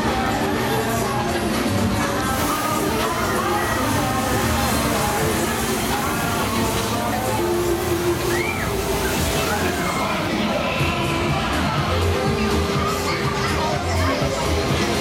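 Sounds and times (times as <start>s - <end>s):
ride music: 0.0s - 15.0s
voices: 0.0s - 15.0s
smoke machine hissing: 2.1s - 11.2s.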